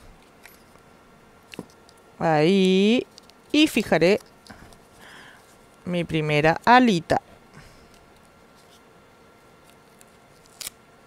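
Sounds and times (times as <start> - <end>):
masking tape handling: 3.1 - 4.9, 9.6 - 10.8.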